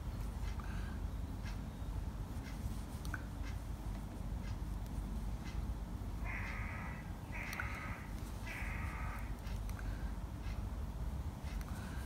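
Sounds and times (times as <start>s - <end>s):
low background rumble: 0.0s - 12.0s
bird cawing harshly: 6.2s - 9.3s.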